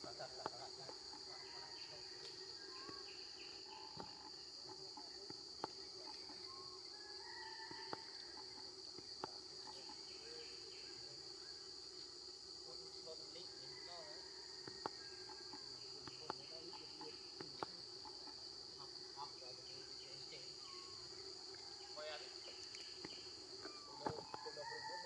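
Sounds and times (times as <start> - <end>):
insects buzzing: 0.0 - 25.0.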